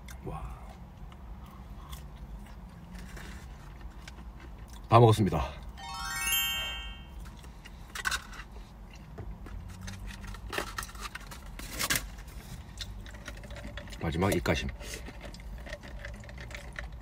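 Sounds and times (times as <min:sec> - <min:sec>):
twinkling chime: 0:05.8 - 0:07.2.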